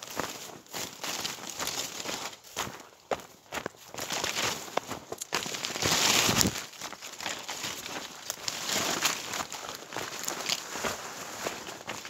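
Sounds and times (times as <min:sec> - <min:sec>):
footsteps through brush: 0:00.0 - 0:12.0
leaves and branches rustling: 0:00.0 - 0:12.0.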